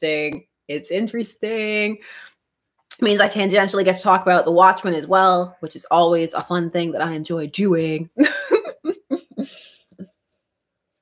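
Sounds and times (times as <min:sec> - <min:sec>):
woman laughing: 0:08.2 - 0:10.1.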